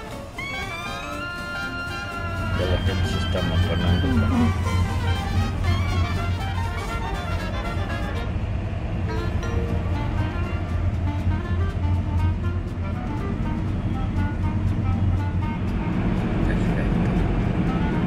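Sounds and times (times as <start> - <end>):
music with short-note melody: 0.0 - 18.0
car driving rumble: 2.2 - 18.0.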